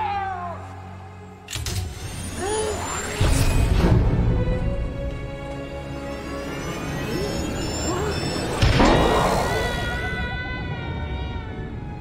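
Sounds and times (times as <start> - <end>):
dramatic orchestral music: 0.0 - 12.0.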